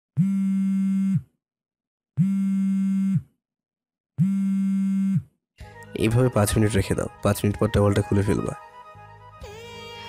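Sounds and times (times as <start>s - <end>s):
harsh electronic buzzer tone: 0.2s - 1.3s, 2.2s - 3.3s, 4.2s - 5.3s.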